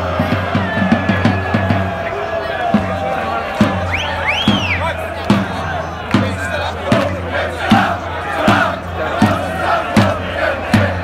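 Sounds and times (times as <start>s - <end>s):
crowd chanting: 0.0s - 11.0s
steady drum beat: 0.0s - 11.0s.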